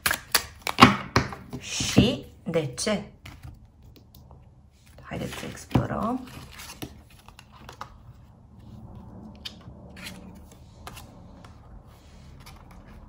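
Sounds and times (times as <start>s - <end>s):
cards sliding: 9.4s - 13.0s.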